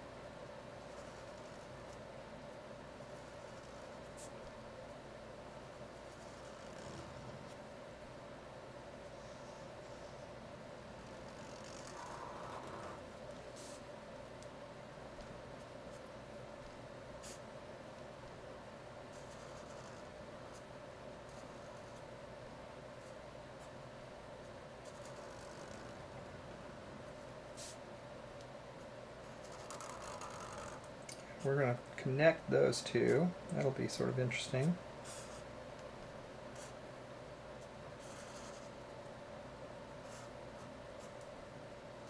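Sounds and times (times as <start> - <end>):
low room hum: 0.0 - 42.0
marker scratching on paper: 0.9 - 2.0, 3.2 - 4.4, 19.1 - 20.7, 24.8 - 26.0, 38.0 - 38.8, 40.0 - 41.3.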